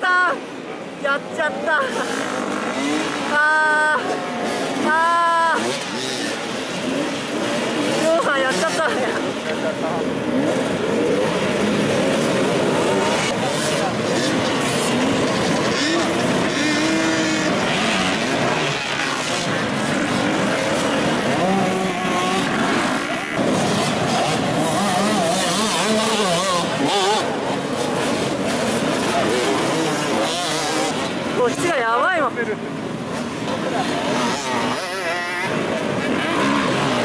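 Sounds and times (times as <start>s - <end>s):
dirt bike engines revving: 0.0s - 37.0s.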